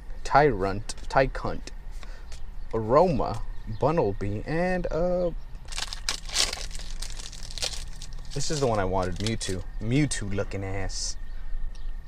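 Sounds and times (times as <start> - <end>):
foil wrapper crinkling: 5.6 - 9.6.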